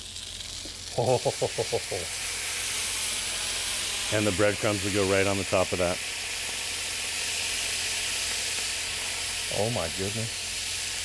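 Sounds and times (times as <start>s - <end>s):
wine and oil sizzling in a skillet: 0.0s - 11.0s.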